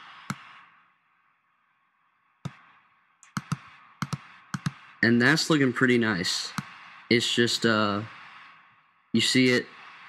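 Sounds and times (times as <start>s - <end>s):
computer mouse clicks: 0.1s - 0.6s, 2.4s - 4.9s, 6.5s - 6.8s.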